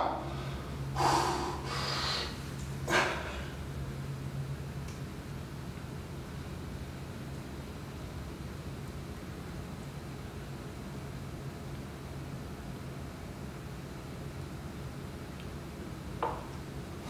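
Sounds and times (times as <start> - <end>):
man breathing out forcefully: 0.2 - 3.6.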